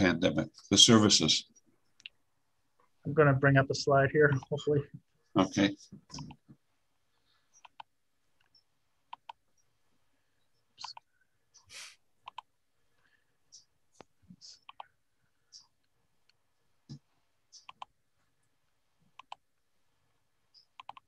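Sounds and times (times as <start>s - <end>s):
computer mouse clicks: 6.1s - 6.5s, 7.5s - 9.7s, 10.8s - 12.5s, 13.5s - 18.0s, 19.1s - 19.5s, 20.5s - 21.0s.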